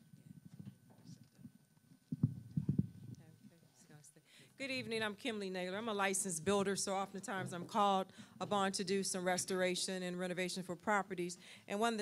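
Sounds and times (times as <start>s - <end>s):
dull low thumps: 2.1s - 3.2s.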